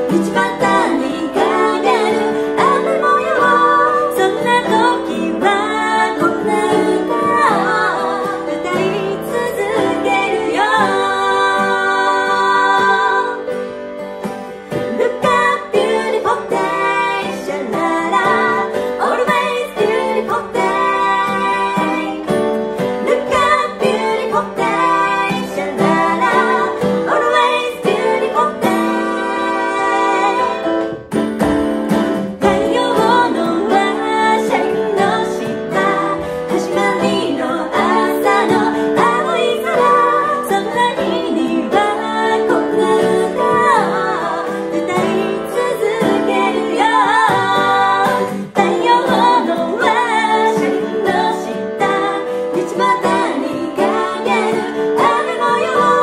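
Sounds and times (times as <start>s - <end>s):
women singing in harmony: 0.0s - 13.9s, 14.6s - 31.0s, 32.3s - 56.0s
strummed acoustic guitar: 0.0s - 56.0s.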